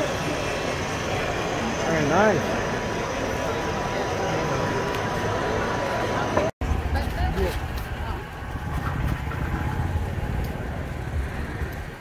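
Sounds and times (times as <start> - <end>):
faint voices: 0.0 - 12.0
low outdoor rumble: 0.0 - 12.0.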